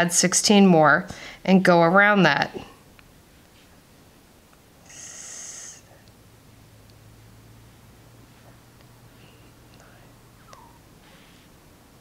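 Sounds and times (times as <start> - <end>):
person breathing out through nose: 4.9 - 5.9.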